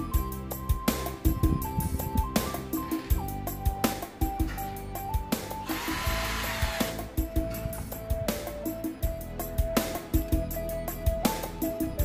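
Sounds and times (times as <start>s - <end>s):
background music with steady beat: 0.0s - 12.0s
electric screwdriver whirring: 5.6s - 7.0s.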